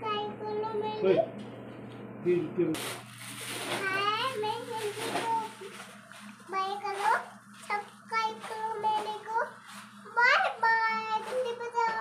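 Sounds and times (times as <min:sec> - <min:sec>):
young child singing: 0:10.2 - 0:12.0.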